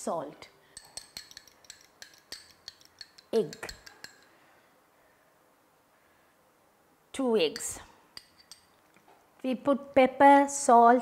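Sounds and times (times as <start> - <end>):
cutlery clinking against glass bowls: 0.8 - 4.3, 7.6 - 8.8.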